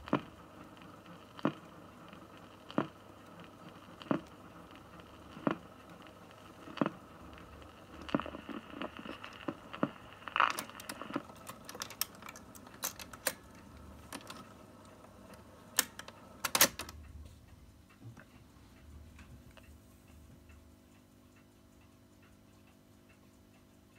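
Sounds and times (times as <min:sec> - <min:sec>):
faint motor hum: 0:00.0 - 0:23.9
stylus crackle and clicks: 0:00.0 - 0:23.9
soft ticks: 0:17.0 - 0:23.9.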